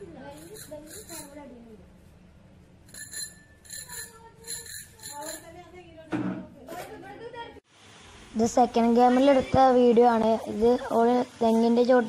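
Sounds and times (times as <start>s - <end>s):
bicycle bell ringing: 0.3s - 1.4s, 2.8s - 5.6s.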